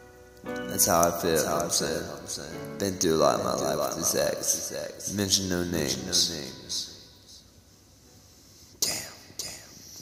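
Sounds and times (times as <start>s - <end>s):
man whispering with echo: 8.7s - 10.0s.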